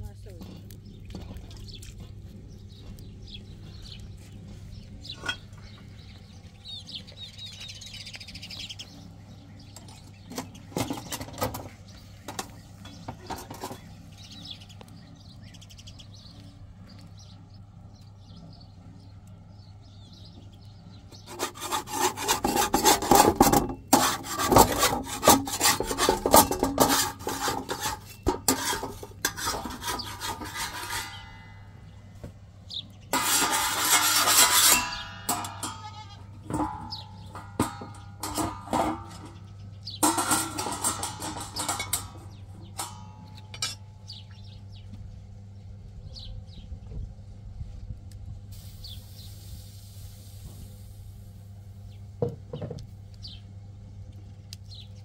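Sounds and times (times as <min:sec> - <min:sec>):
metal scraper on iron griddle: 0:10.2 - 0:14.6, 0:21.2 - 0:31.7, 0:33.1 - 0:44.2.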